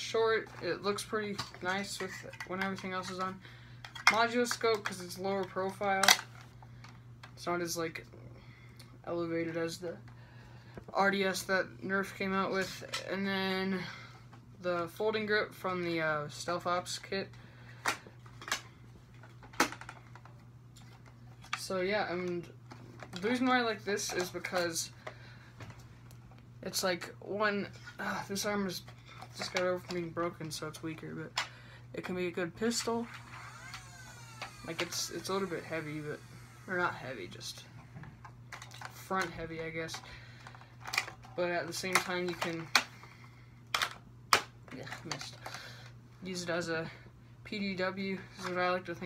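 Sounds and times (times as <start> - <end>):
plastic parts clicking: 17.8 - 21.6, 32.8 - 36.9, 38.5 - 42.9, 43.7 - 45.6.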